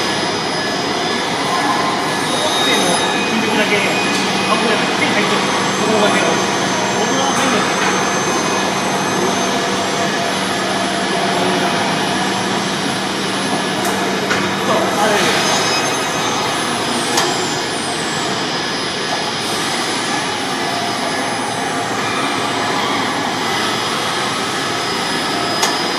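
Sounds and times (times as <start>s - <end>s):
low machine hum: 0.0s - 25.9s
warehouse machinery running: 0.0s - 25.9s.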